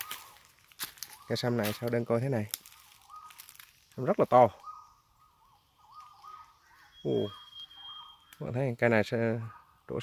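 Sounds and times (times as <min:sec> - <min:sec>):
bird whistling call: 0:04.5 - 0:08.6.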